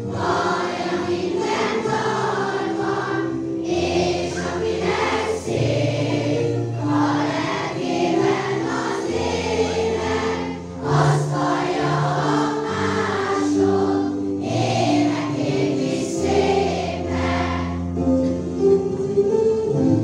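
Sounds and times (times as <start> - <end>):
children's choir singing: 0.0 - 17.9.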